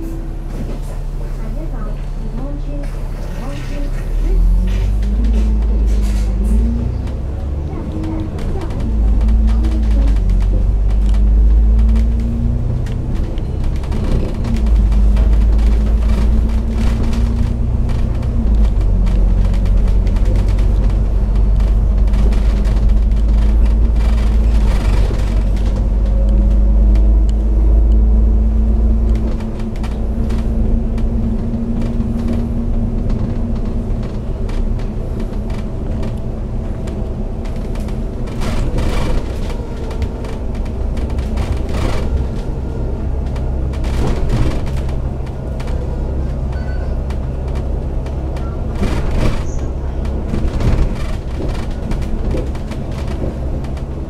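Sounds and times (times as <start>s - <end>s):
bus engine rumble and whine: 0.0s - 54.0s
small interior rattles: 0.5s - 54.0s.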